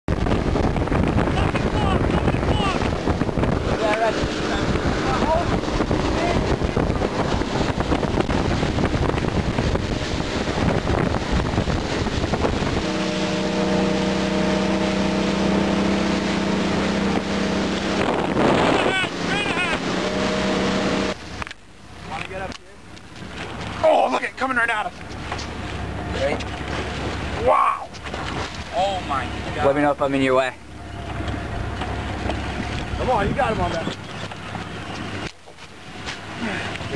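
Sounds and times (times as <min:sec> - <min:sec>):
boat engine running: 0:00.1 - 0:36.9
wind and water rushing: 0:00.1 - 0:36.9.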